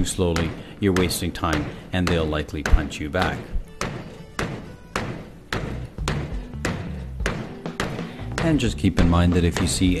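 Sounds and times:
background music: 0.0s - 10.0s
fist thudding on punching bag: 0.4s - 8.7s.

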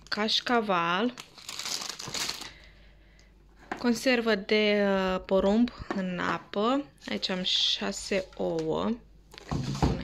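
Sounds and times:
plastic packaging crinkling: 0.0s - 2.7s.

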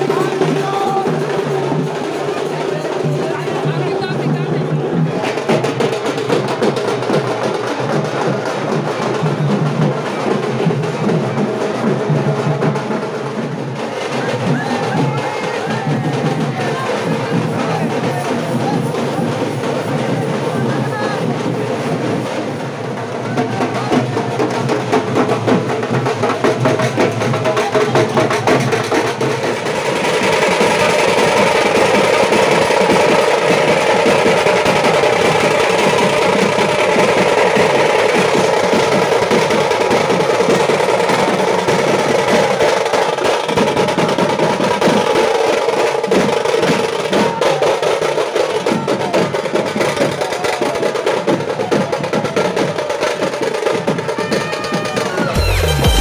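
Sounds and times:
hand drums rolling: 0.0s - 56.0s.

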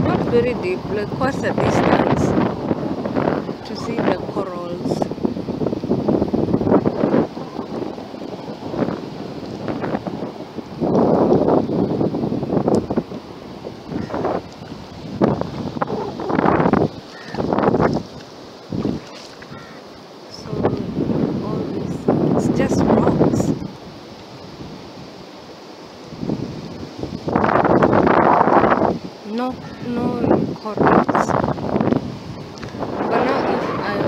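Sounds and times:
wind gusting across microphone: 0.0s - 34.0s.

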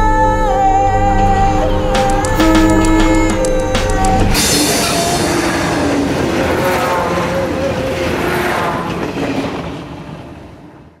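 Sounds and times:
train passing: 2.0s - 11.0s.

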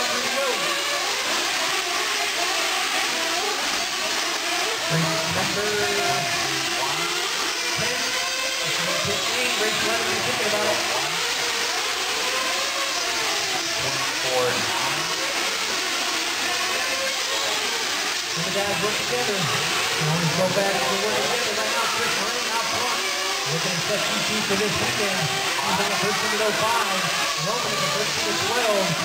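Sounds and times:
rc car engines whining: 0.0s - 29.0s.

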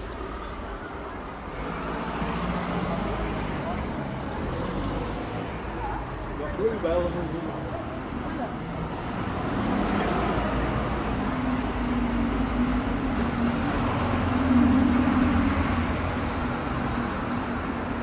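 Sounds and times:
cars and buses passing: 0.0s - 18.0s
road noise: 0.0s - 18.0s.

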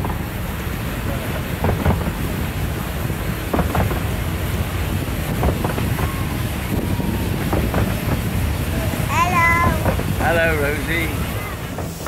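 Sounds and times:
railway carriages rumbling: 0.0s - 12.0s
wheels clicking over rail joints: 0.0s - 12.0s.

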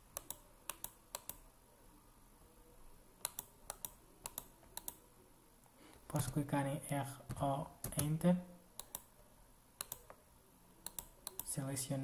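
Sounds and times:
computer mouse and keyboard clicks: 0.2s - 1.4s, 3.2s - 5.0s, 8.8s - 9.1s, 9.8s - 10.2s, 10.8s - 11.6s.

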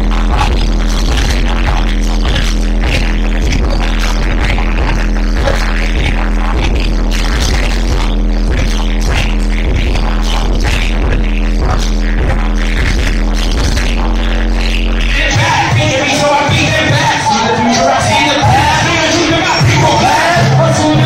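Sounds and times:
bass-heavy hip-hop beat: 0.0s - 21.0s
rappers performing into microphones: 0.0s - 21.0s.

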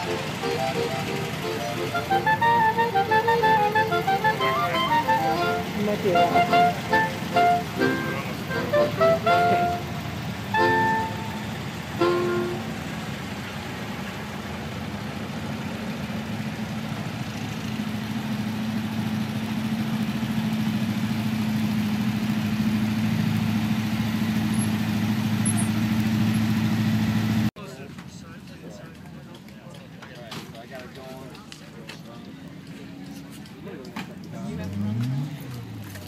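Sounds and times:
quick tune of pitched notes: 0.0s - 12.8s
van engine running: 0.0s - 27.6s.

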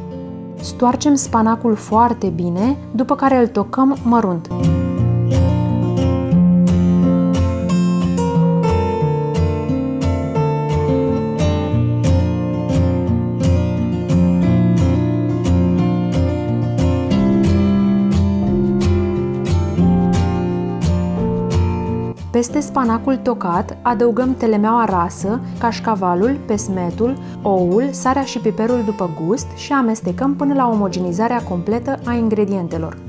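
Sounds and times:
acoustic guitar strumming chords: 4.1s - 33.0s.

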